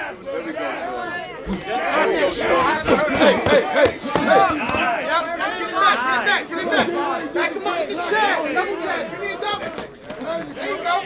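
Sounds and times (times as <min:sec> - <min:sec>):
crowd chattering and calling out: 0:00.0 - 0:11.0.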